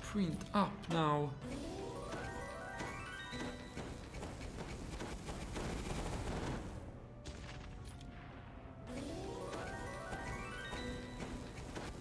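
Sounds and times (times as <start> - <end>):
electric crackling slot sound effects: 0.2 - 4.6, 8.8 - 12.0.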